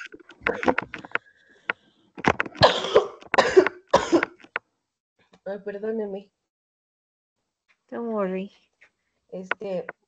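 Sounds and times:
person coughing: 2.6 - 4.4.

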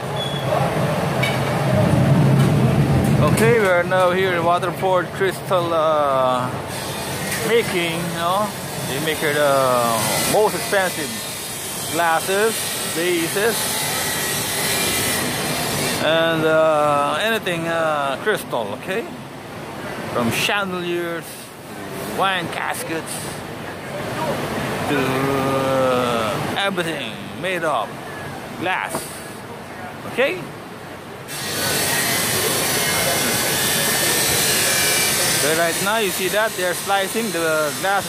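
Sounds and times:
rasping hiss of grinding machinery: 6.7 - 16.2, 31.3 - 38.0.

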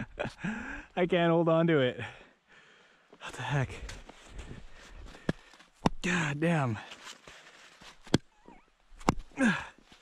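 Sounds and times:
log striking knife spine: 9.0 - 9.4
person grunting: 9.3 - 9.8.

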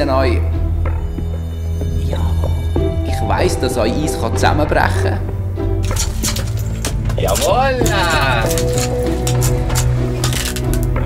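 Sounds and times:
background music with low drone: 0.0 - 11.0
ice axe chipping ice: 6.0 - 11.0.

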